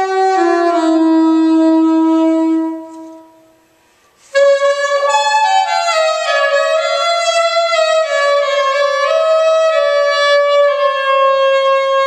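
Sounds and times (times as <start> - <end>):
soprano saxophone solo: 0.0 - 3.6, 4.2 - 12.0.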